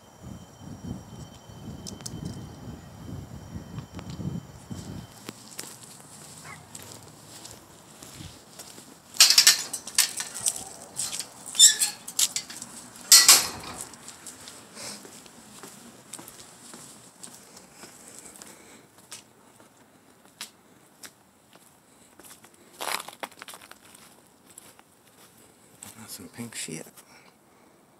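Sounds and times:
chain-link gate rattling: 0:09.2 - 0:14.1.

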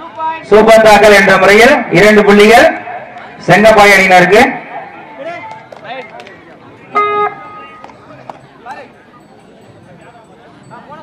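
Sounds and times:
faint background voices: 0:04.5 - 0:11.0
guitar-like note ringing: 0:06.9 - 0:07.9.

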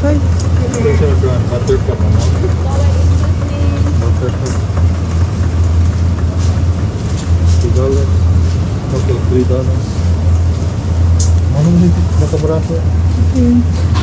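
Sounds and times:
faint voices: 0:00.0 - 0:10.5
refrigerated case humming: 0:00.0 - 0:14.0.

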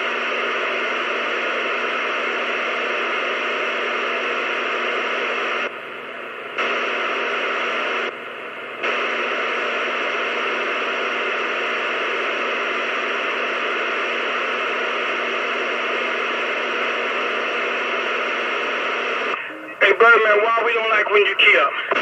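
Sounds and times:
radio static: 0:00.0 - 0:22.0.

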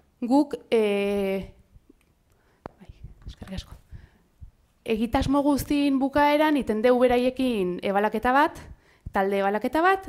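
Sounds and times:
faint breathy noises: 0:02.3 - 0:04.6.

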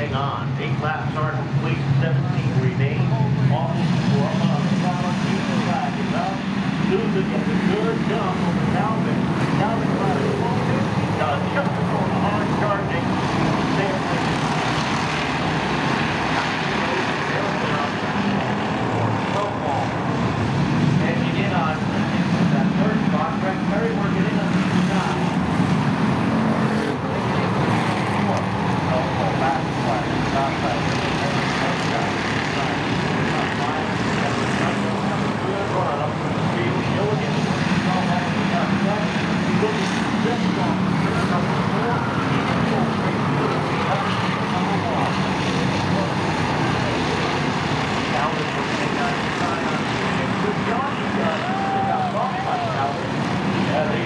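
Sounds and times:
race car engines droning: 0:00.0 - 0:54.0.

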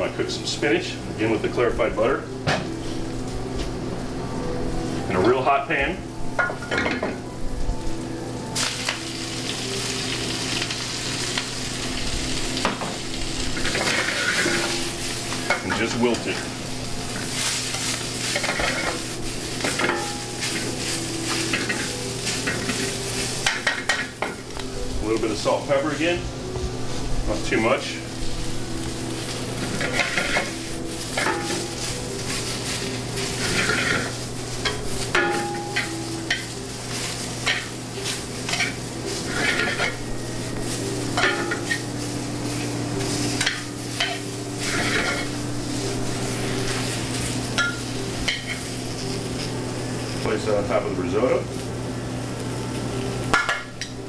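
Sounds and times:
spinach sizzling in a pan: 0:00.0 - 0:54.0
metal tongs turning food: 0:13.4 - 0:25.3, 0:28.7 - 0:50.3.

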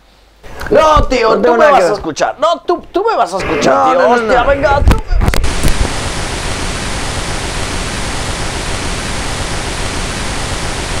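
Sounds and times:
loud static hiss: 0:03.4 - 0:11.0.

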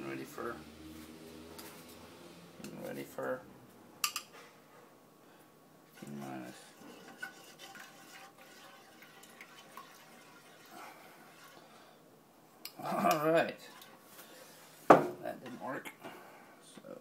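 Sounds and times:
kitchen utensils clinking and scraping: 0:06.0 - 0:10.7.

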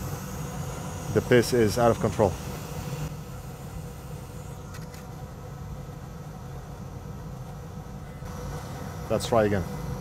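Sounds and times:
fan humming: 0:00.0 - 0:10.0.

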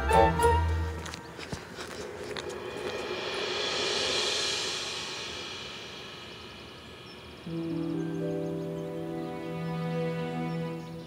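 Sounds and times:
faint sustained music: 0:00.0 - 0:11.0.

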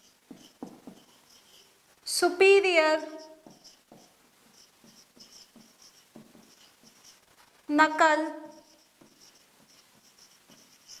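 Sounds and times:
marker pen on whiteboard: 0:00.0 - 0:11.0.

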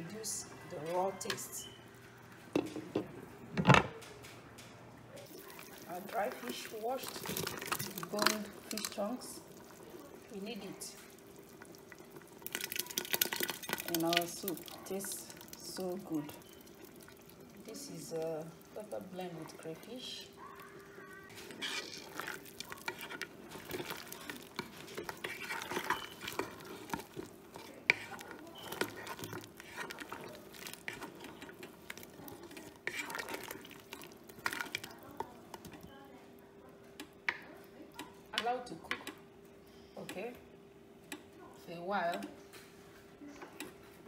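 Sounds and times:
spoon knocking and scraping pot: 0:21.4 - 0:33.7.

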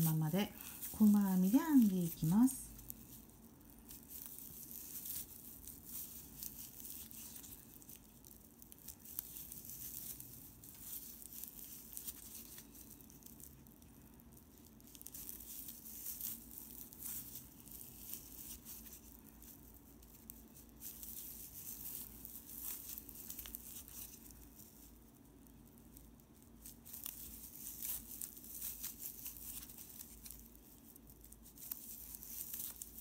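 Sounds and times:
yarn rustling through stitches: 0:00.0 - 0:33.0.

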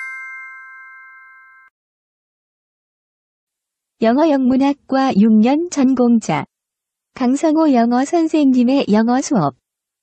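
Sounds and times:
bell-like chime ringing: 0:00.0 - 0:01.8.

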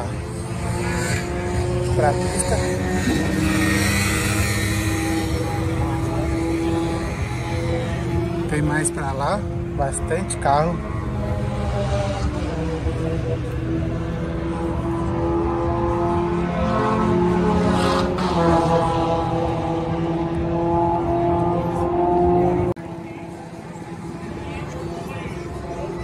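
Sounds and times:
crowd background: 0:00.0 - 0:26.0
engine running: 0:00.0 - 0:26.0.

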